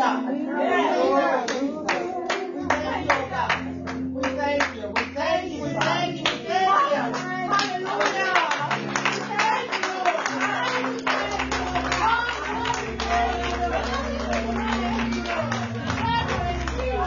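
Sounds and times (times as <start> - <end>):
sustained keyboard chords: 0.0 - 17.0
voices singing: 0.0 - 17.0
hands clapping on a beat: 1.5 - 17.0.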